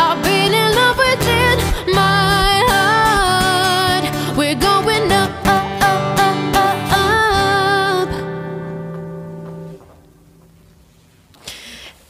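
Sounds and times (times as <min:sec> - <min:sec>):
woman singing with vibrato: 0:00.0 - 0:08.6
acoustic guitar strumming: 0:00.0 - 0:10.5.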